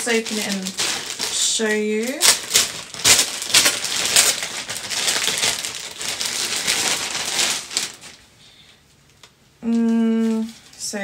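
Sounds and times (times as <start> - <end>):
plastic bag crinkling: 0.0 - 8.4, 9.6 - 11.0.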